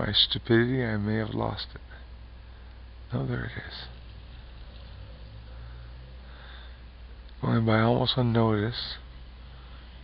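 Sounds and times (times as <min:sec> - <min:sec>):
faint low hum: 0:00.0 - 0:10.0
light background hiss: 0:00.0 - 0:10.0.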